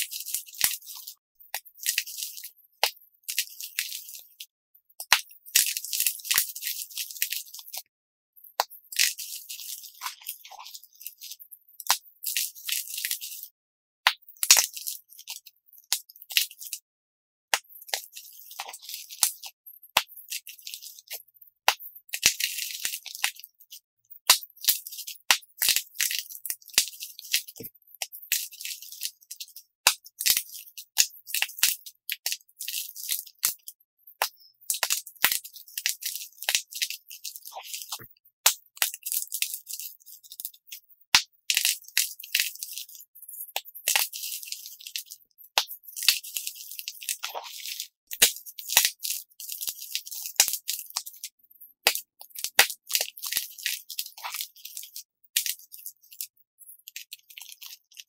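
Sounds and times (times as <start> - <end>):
chalk crunching and crumbling: 0.0 - 4.5, 8.6 - 13.5, 17.9 - 21.2, 22.1 - 38.1, 38.8 - 40.8, 41.5 - 58.0.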